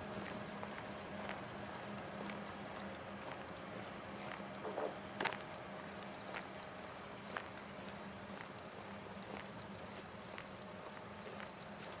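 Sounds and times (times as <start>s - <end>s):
slow footsteps: 0.0s - 12.0s.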